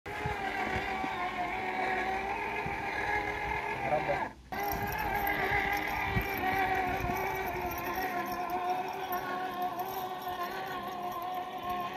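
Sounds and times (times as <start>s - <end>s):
electric drive whine: 0.1s - 11.9s.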